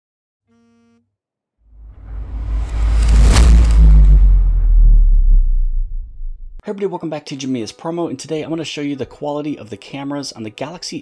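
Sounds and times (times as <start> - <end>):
deep rumble: 1.7 - 6.6
rising whoosh: 1.8 - 6.6.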